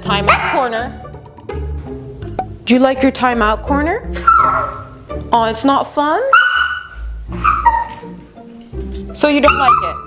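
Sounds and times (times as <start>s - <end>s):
background music: 0.0s - 10.0s
dog whining: 4.2s - 5.0s, 6.3s - 8.2s.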